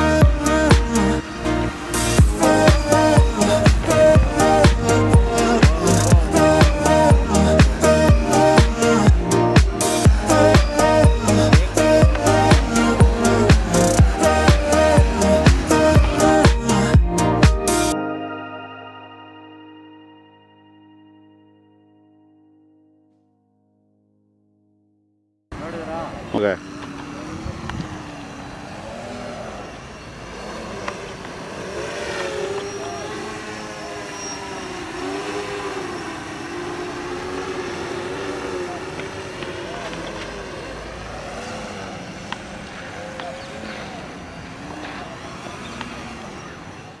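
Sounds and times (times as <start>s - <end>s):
quadcopter propellers whirring: 0.0s - 17.9s, 25.6s - 47.0s.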